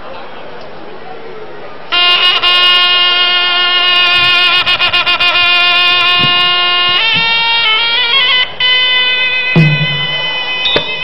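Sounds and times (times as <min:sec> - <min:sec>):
reed oboe long note: 0:01.9 - 0:11.0.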